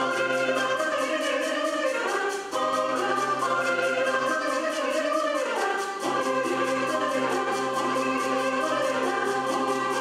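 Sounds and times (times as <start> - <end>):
choir singing: 0.0 - 10.0
flute: 0.0 - 10.0
woman singing lead: 0.0 - 10.0.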